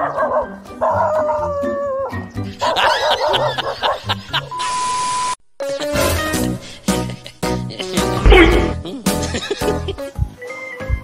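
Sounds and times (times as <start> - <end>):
dog barking and yelping: 0.0 - 1.6, 2.6 - 4.3
background music: 0.0 - 4.6, 5.6 - 11.0.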